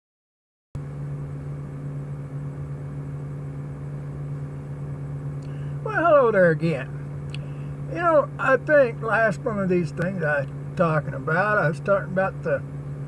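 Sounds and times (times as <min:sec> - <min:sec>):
air conditioner humming: 0:00.9 - 0:13.0.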